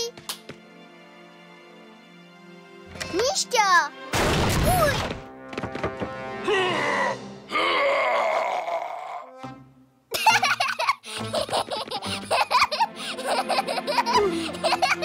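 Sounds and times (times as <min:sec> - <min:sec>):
cartoon bear groaning and grunting: 0:06.4 - 0:09.5.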